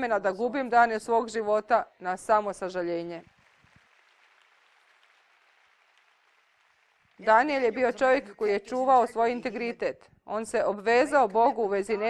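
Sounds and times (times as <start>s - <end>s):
faint audience applause: 3.1s - 8.2s.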